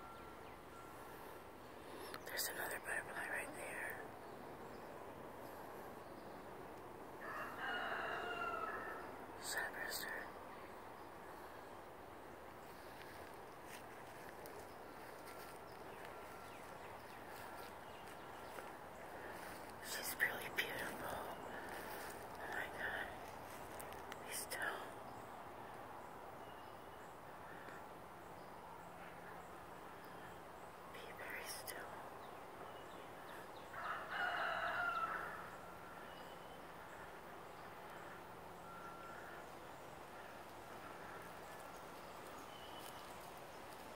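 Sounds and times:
rooster crowing: 0:07.2 - 0:09.2, 0:33.7 - 0:36.1.

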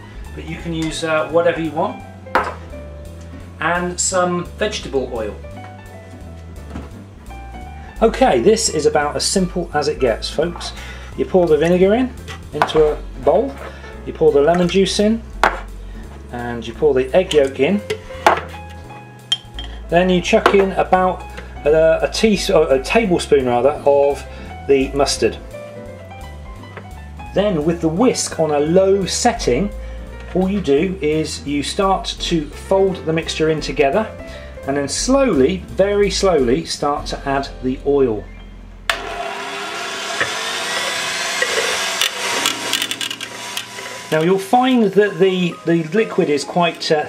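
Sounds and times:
kitchenware knocking: 0:15.4 - 0:15.7, 0:18.3 - 0:18.5
electric hand mixer running: 0:38.9 - 0:46.2.

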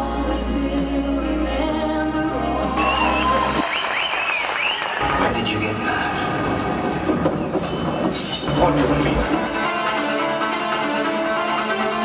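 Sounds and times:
show music: 0:00.0 - 0:07.4, 0:08.5 - 0:12.0
audience applause and cheering: 0:02.6 - 0:07.6
shrill whistles: 0:02.8 - 0:05.0.

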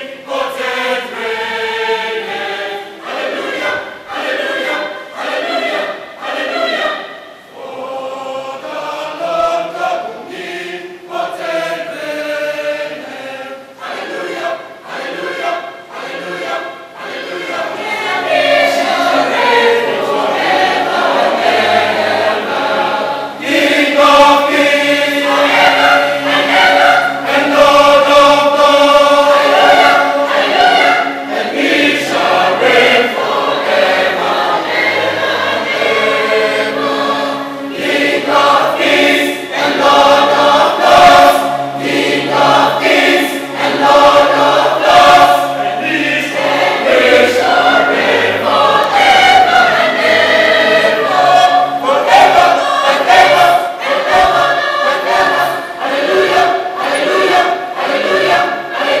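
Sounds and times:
mixed choir singing: 0:00.0 - 0:59.0.

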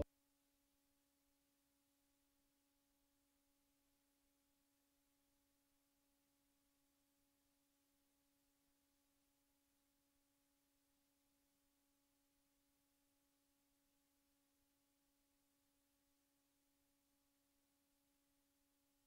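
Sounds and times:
faint steady hum and hiss: 0:00.0 - 0:19.0.

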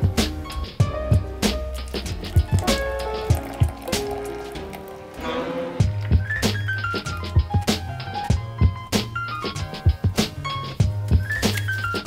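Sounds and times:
background music with steady beat: 0:00.0 - 0:12.0
water pouring onto coffee: 0:01.7 - 0:05.3.

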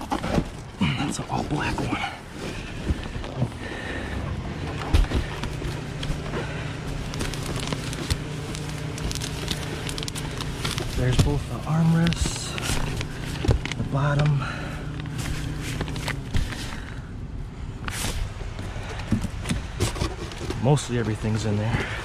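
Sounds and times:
steady low hum: 0:00.0 - 0:22.0
bubble wrap and cardboard rustling: 0:04.9 - 0:17.0.

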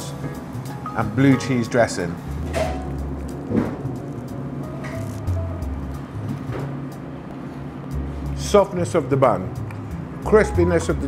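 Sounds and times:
deep bass line: 0:02.2 - 0:06.9, 0:07.9 - 0:11.0.

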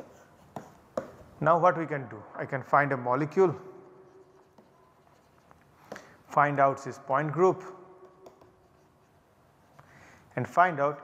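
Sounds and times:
stylus scratching on tablet: 0:00.0 - 0:01.3, 0:03.3 - 0:06.0, 0:08.0 - 0:09.8.

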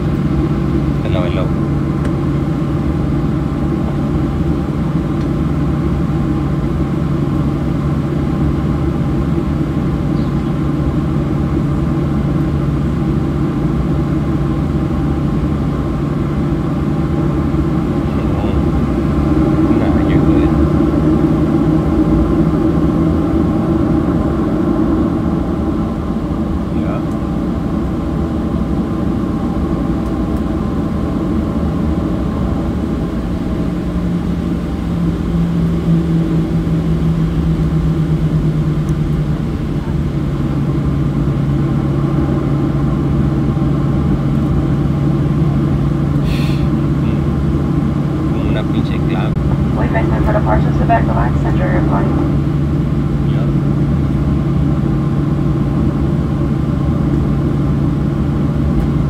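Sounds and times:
jet engine cabin drone: 0:00.0 - 0:59.0.

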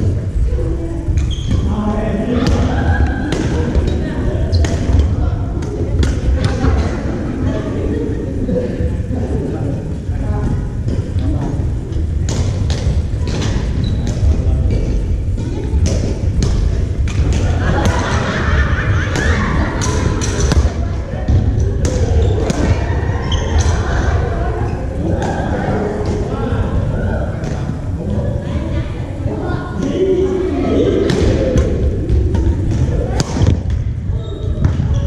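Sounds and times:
indistinct voices echoing: 0:00.0 - 0:35.0
steady low rumble: 0:01.8 - 0:34.8.

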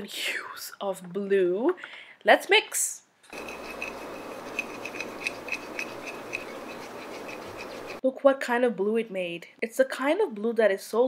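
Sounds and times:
stick scraping in glue: 0:03.3 - 0:08.0.

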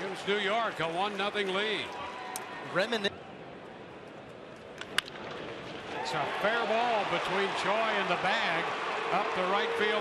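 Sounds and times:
murmur of ballpark crowd: 0:00.0 - 0:10.0.

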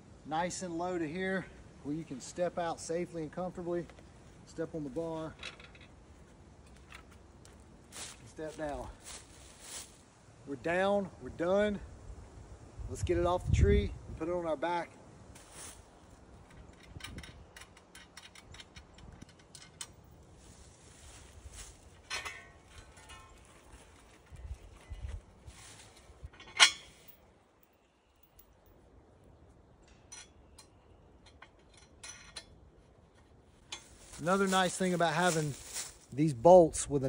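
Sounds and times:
light rustling: 0:03.7 - 0:10.0, 0:31.3 - 0:36.2
metal frame clicking and clinking: 0:05.0 - 0:06.0, 0:16.4 - 0:20.3, 0:21.9 - 0:25.2, 0:25.9 - 0:28.5, 0:29.8 - 0:32.8, 0:33.6 - 0:34.4.

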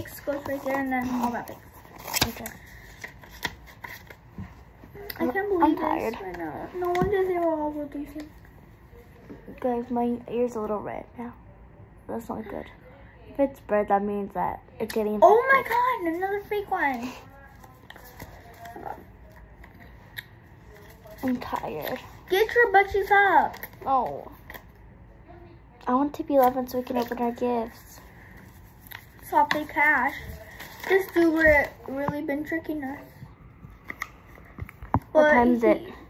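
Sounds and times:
paper bills rustling: 0:00.0 - 0:04.2, 0:26.4 - 0:32.0.

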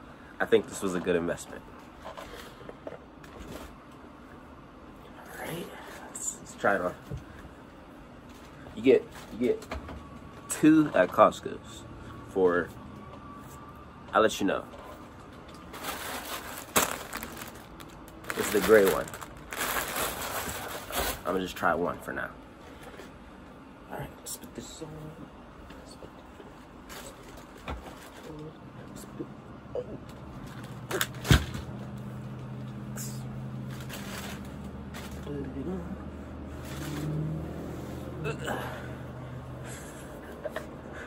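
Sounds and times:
steady low hum: 0:00.0 - 0:41.0
plastic bag crinkling: 0:15.6 - 0:21.4, 0:33.6 - 0:35.3.

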